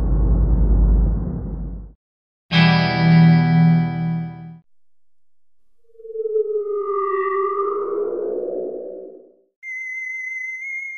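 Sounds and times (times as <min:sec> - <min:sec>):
low synthesized tone sliding down: 0:05.0 - 0:09.5.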